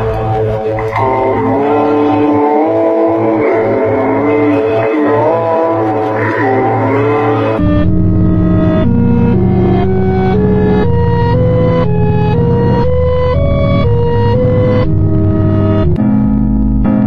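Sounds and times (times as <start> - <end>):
electronic music: 0.0 - 17.0.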